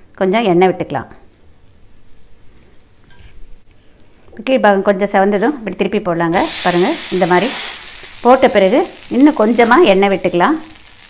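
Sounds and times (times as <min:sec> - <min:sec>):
oil sizzling on hot pan: 0:05.4 - 0:11.0.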